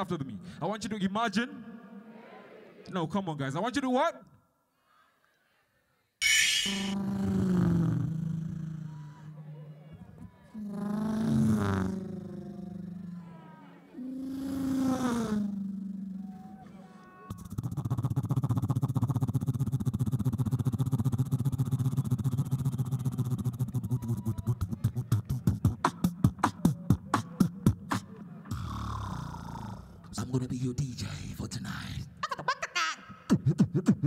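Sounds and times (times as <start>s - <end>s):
beatboxer sliding tones: 6.2s - 9.9s, 10.6s - 13.2s, 17.2s - 28.9s
beatboxed buzzing bass beat: 6.6s - 9.3s, 10.6s - 13.1s, 17.3s - 30.0s, 33.2s - 34.0s.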